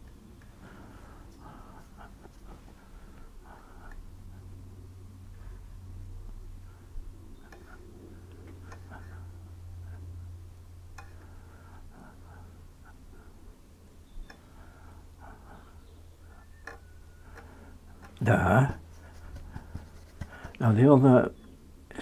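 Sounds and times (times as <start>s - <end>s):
steady low hum: 0.0s - 22.0s
faint ticks: 10.9s - 11.5s, 16.4s - 18.2s
brush strokes on paper: 18.3s - 20.8s.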